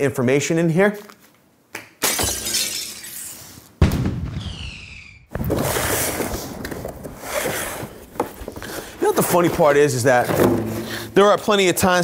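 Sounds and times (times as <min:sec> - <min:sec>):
glass shattering: 0:02.0 - 0:03.4.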